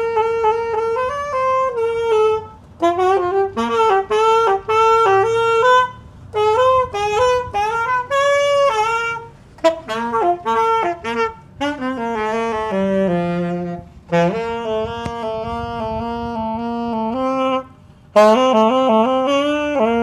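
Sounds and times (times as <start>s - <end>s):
solo saxophone melody: 0.0s - 20.0s.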